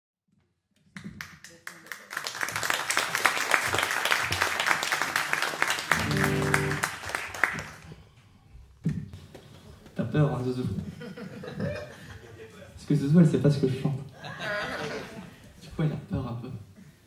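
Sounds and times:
audience applause: 1.2s - 7.8s
low held note: 5.9s - 6.9s.

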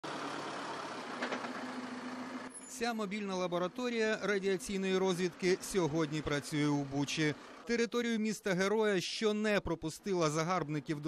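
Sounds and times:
van engine humming: 0.0s - 7.8s.

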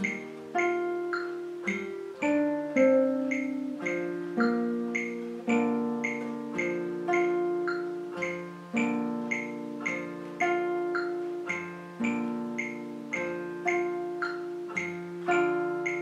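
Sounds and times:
fingerpicked classical guitar: 0.0s - 16.0s
metronome clicking: 0.0s - 16.0s.

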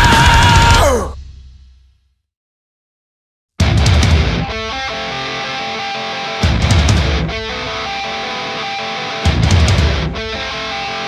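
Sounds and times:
heavy metal electric guitars: 0.0s - 1.2s, 3.6s - 11.0s
bass and drums accent: 0.0s - 2.0s, 3.6s - 4.8s, 6.4s - 7.5s, 9.3s - 10.2s.

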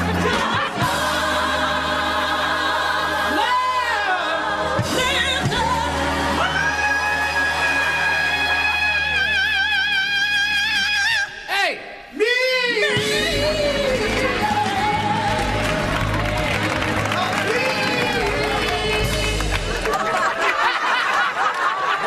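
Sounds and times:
gospel choir singing: 0.0s - 11.4s, 12.2s - 22.0s.

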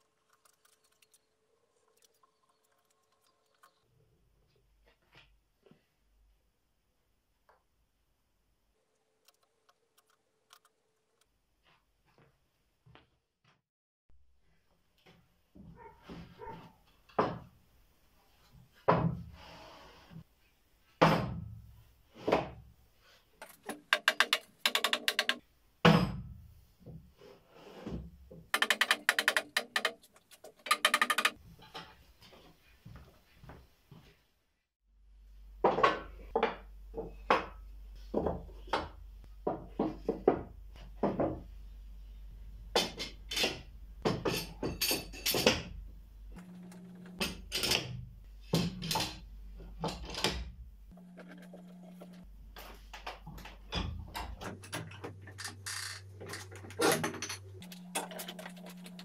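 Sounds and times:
wooden boards knocking: 23.4s - 25.4s, 28.6s - 30.0s, 30.6s - 31.4s.

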